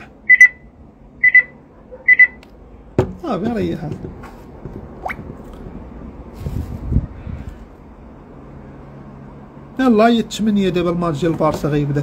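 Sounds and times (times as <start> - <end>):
electronic device double beep: 0.3 - 2.4.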